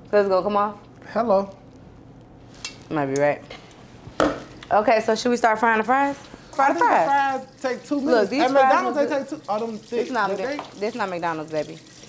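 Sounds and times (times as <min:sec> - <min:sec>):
food sizzling while frying: 0:05.3 - 0:12.0
person talking: 0:06.6 - 0:11.6.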